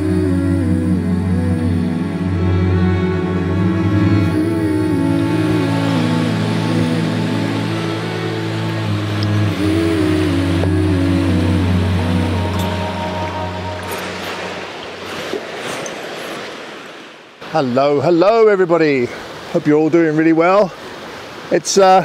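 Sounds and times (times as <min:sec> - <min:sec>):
slow ambient music: 0:00.0 - 0:16.5
water rushing in a creek: 0:00.0 - 0:22.0.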